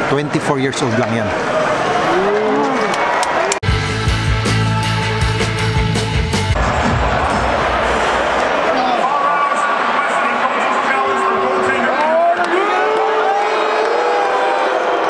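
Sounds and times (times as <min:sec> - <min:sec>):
crowd shouts and calls: 0:00.0 - 0:03.6, 0:06.5 - 0:15.0
arena crowd din: 0:00.0 - 0:15.0.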